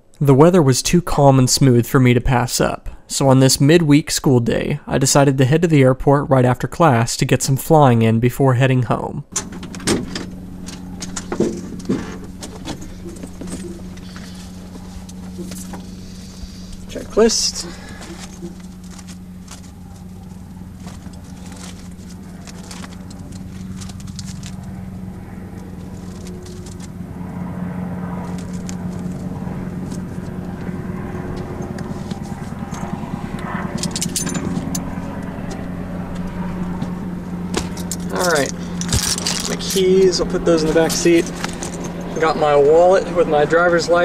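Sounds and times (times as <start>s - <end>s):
engine hum: 6.8s - 44.0s
paper rustling: 17.8s - 24.7s.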